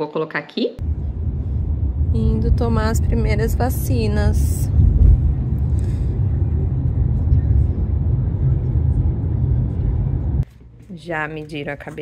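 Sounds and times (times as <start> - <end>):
car road and engine rumble: 0.8 - 10.4.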